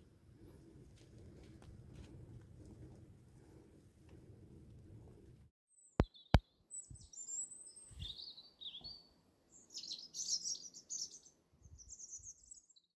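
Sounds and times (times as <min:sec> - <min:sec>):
small birds chirping: 0:05.8 - 0:12.9.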